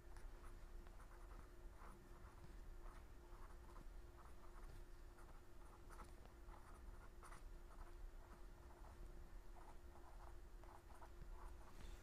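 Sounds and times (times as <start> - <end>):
pencil scratching on paper: 0.0 - 12.0
steady low hum: 0.0 - 12.0.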